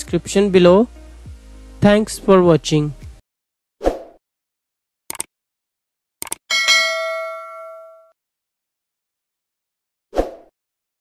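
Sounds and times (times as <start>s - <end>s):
notification bell chime: 6.5s - 8.1s.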